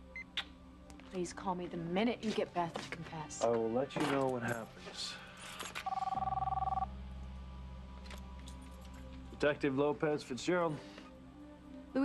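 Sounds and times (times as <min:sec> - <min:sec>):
low steady drone: 0:05.0 - 0:12.0
mobile phone ringing: 0:05.8 - 0:06.9.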